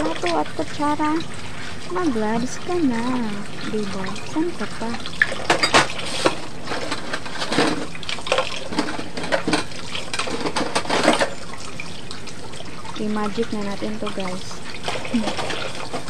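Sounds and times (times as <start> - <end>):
dishes knocking and splashing: 5.2 - 11.5.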